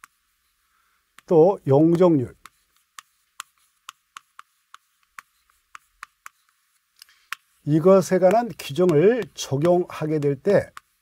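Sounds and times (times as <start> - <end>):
chalk tapping on chalkboard: 1.1 - 11.0.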